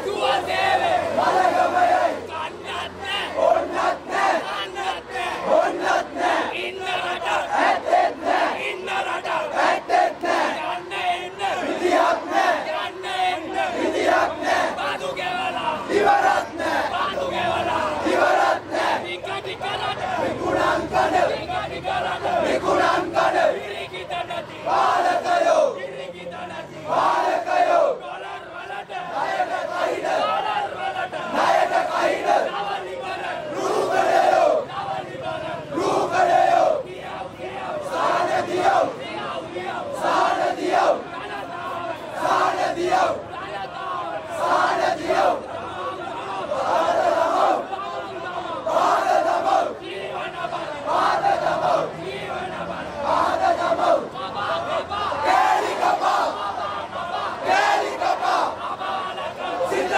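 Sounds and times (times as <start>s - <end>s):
crowd of men shouting slogans: 0.0s - 59.9s.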